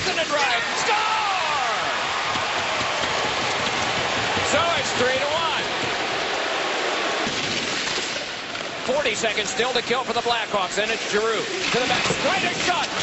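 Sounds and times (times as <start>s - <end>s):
hockey arena crowd roar: 0.0s - 13.0s.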